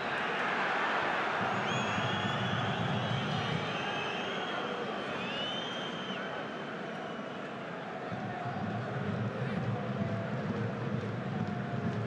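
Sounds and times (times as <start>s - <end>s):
stadium crowd voices: 0.0s - 12.0s
shrill whistles from fans: 1.5s - 7.3s.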